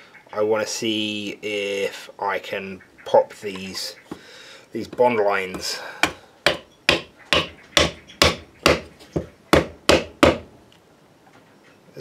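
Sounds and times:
wooden mallet striking wooden wedge: 4.9 - 10.5.

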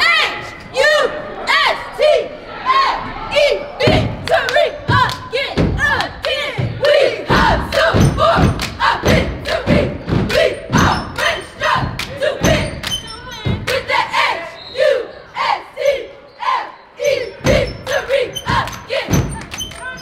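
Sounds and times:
stomping on bleachers: 3.8 - 12.9
rhythmic clapping: 3.9 - 14.0, 17.5 - 20.0.

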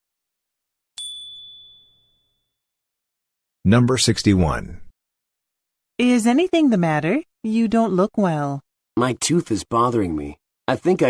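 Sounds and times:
high bright chime ding: 1.0 - 2.5.

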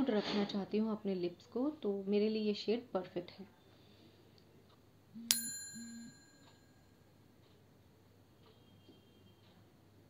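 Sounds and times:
bright bell ding: 5.2 - 6.8.

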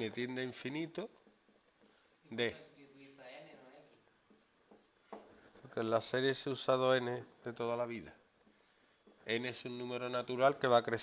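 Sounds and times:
marker writing on whiteboard: 0.0 - 5.3, 8.4 - 9.9.

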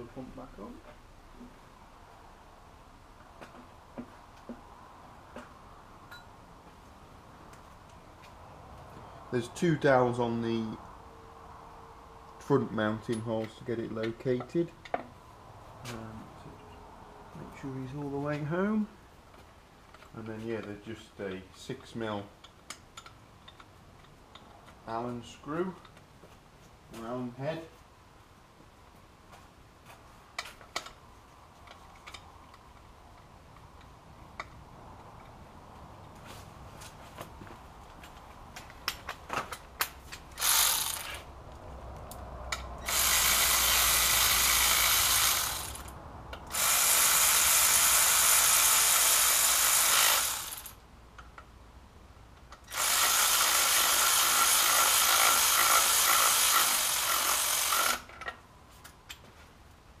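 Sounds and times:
electric ratchet running: 40.3 - 41.3, 42.5 - 50.8, 52.6 - 58.1.

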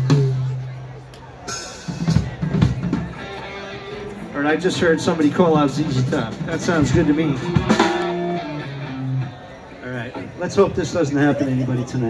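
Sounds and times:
electric guitar single notes: 5.0 - 9.5.

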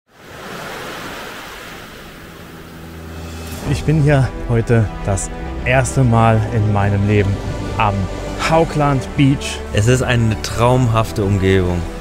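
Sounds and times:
waves washing on sandy beach: 0.1 - 3.1.

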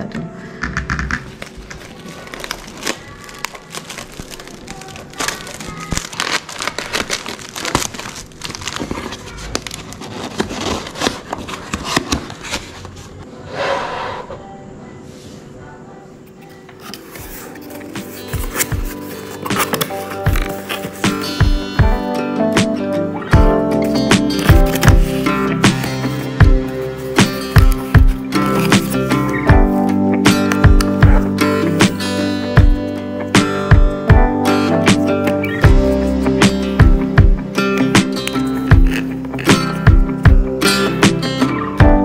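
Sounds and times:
cardboard packaging crinkling: 1.3 - 13.2, 16.8 - 21.8, 23.9 - 31.1, 37.8 - 39.9
cardboard rasp: 16.9 - 21.6
background music: 17.0 - 42.0.

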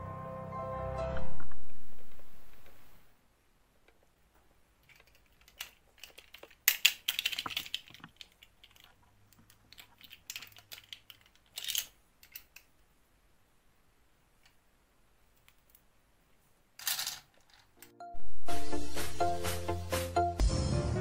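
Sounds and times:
plastic toy doll clicks and rustles: 4.8 - 12.8, 16.8 - 17.9
doll set down among plastic beads: 16.8 - 17.8.

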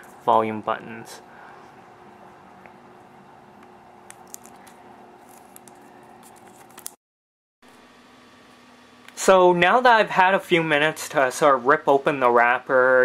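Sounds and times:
low room hum: 0.0 - 7.0, 7.7 - 13.0.

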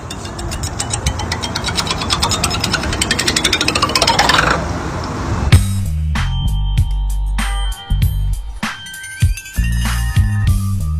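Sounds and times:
metal bar spinning on wooden table: 0.0 - 4.7
background music with bass line: 5.5 - 10.9.

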